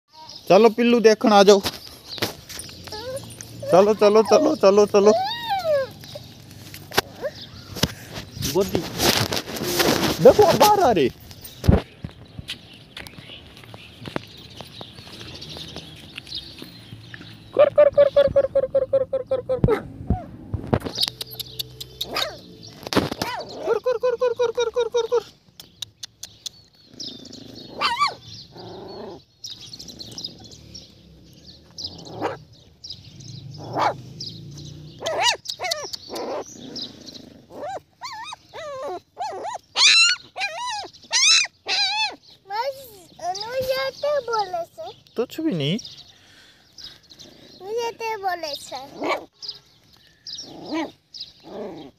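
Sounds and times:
dogs growling and snarling: 2.5s - 7.6s, 23.2s - 23.8s, 26.7s - 42.2s, 47.0s - 47.8s, 48.8s - 49.6s, 50.3s - 51.9s
dog yelping: 2.6s - 6.3s, 7.0s - 7.5s, 17.5s - 22.4s, 23.2s - 23.9s, 27.3s - 29.2s, 32.0s - 32.5s, 33.6s - 34.0s, 35.0s - 42.2s, 48.8s - 49.6s, 50.4s - 51.9s.

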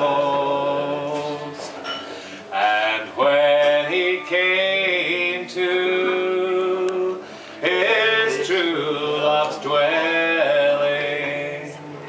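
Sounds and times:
man singing unaccompanied: 0.0s - 1.8s, 2.5s - 12.0s.

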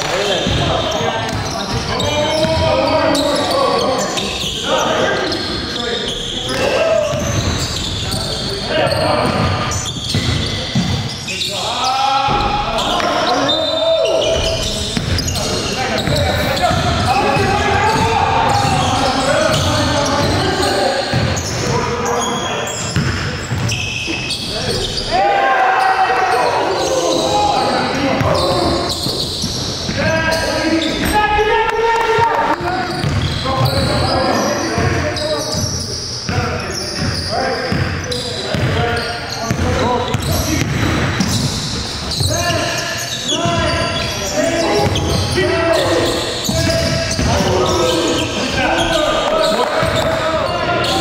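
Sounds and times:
players calling out: 0.0s - 51.0s
basketball bouncing on gym floor: 7.0s - 11.1s, 14.3s - 20.5s, 21.1s - 21.8s, 22.8s - 23.8s, 32.5s - 34.1s, 34.8s - 38.8s, 39.4s - 42.5s, 46.4s - 47.8s, 48.8s - 50.6s.

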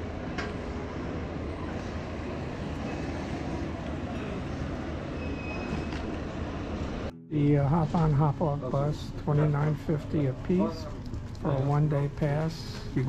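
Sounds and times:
low traffic rumble: 0.0s - 13.0s.

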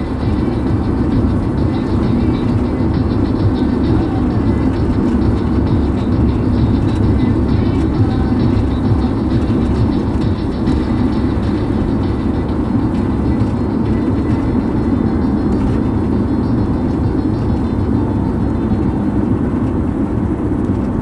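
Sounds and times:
car road and engine noise: 0.0s - 21.0s
faint music: 0.0s - 21.0s.

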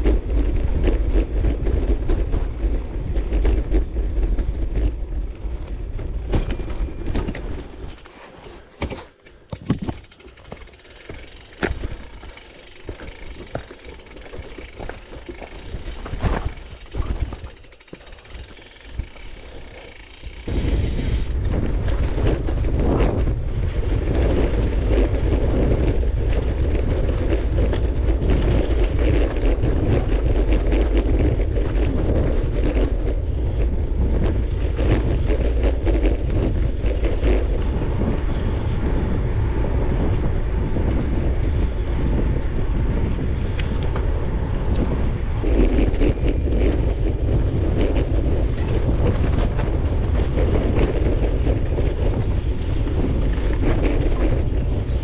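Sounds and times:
wind rushing on microphone: 0.0s - 8.1s, 18.9s - 55.0s
bike clicks and knocks: 0.0s - 20.8s, 21.4s - 42.8s, 43.4s - 55.0s
tyre rumble on dirt road: 0.0s - 55.0s.

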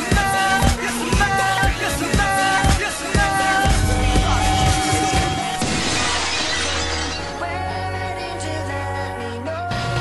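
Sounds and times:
entrance music beat: 0.0s - 6.3s
glass shattering: 5.2s - 7.4s.

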